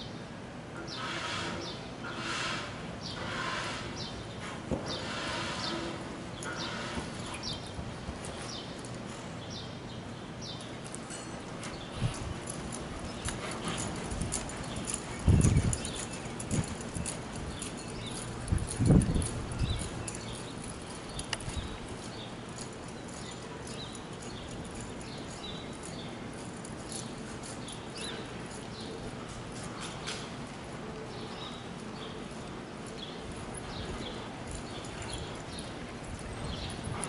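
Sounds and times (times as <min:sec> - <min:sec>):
horse hooves in soft dirt: 0:02.5 - 0:37.0
small birds chirping: 0:03.0 - 0:37.0.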